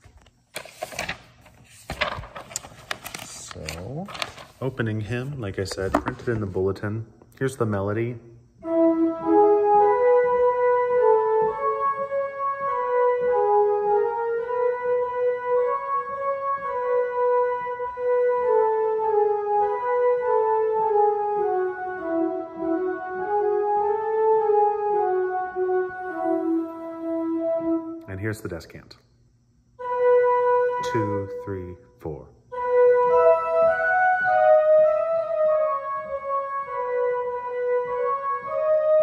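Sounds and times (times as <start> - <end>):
flute-like organ melody: 7.7 - 28.4, 29.8 - 39.0.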